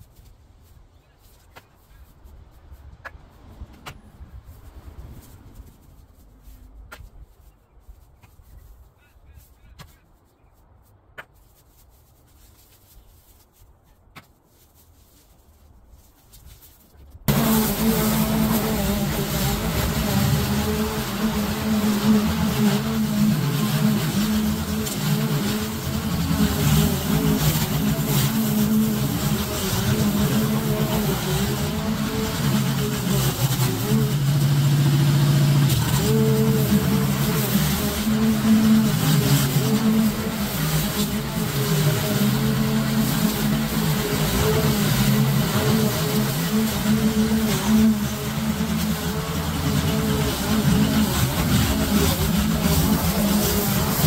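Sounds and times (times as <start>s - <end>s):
lawn mower cutting long grass: 17.3s - 54.0s.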